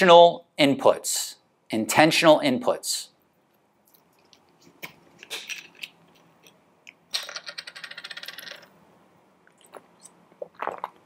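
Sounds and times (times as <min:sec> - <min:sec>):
person drinking from bottle: 0:09.5 - 0:11.0.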